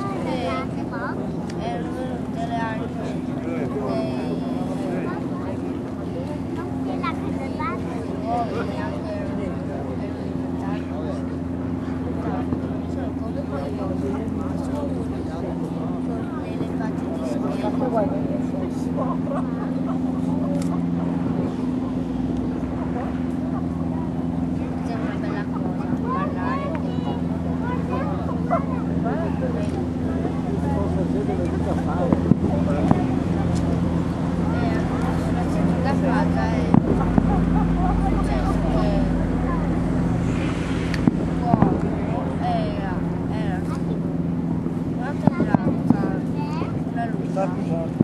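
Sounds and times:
boat engine humming: 0.0s - 48.0s
people chattering: 0.0s - 48.0s
voices talking: 0.0s - 48.0s
sharp crack: 40.0s - 42.1s.

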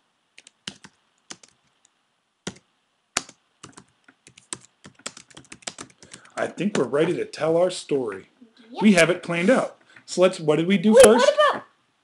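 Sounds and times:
typing on computer keyboard: 0.4s - 1.6s, 2.4s - 2.6s, 3.2s - 6.4s.

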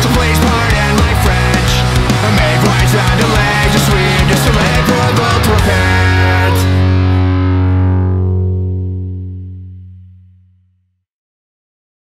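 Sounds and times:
punk rock band final hit: 0.0s - 9.2s
distorted electric guitar chord ringing: 0.0s - 10.4s.

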